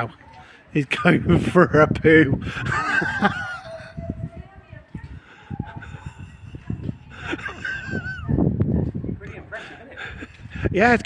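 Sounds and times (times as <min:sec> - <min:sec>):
footsteps on cobblestones: 0:02.9 - 0:11.0.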